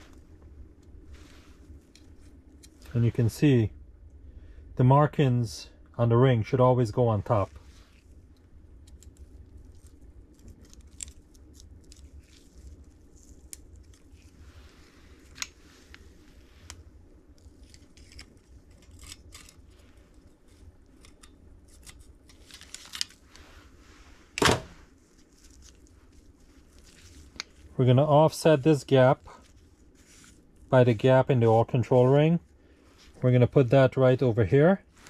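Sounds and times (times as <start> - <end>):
low hum: 0.0 - 35.0.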